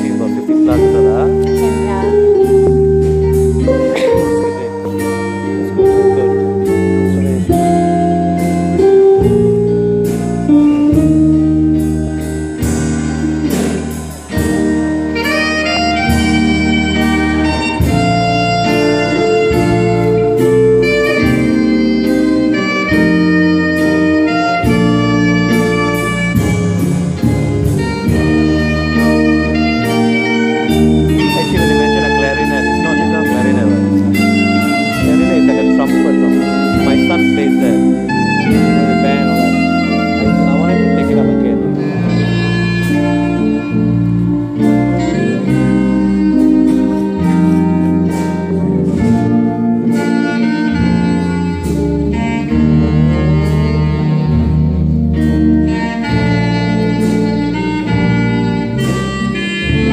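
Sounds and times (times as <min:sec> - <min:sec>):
steady drum beat: 0:00.0 - 0:55.1
bass line: 0:00.0 - 0:59.9
electric guitar: 0:00.0 - 0:59.9.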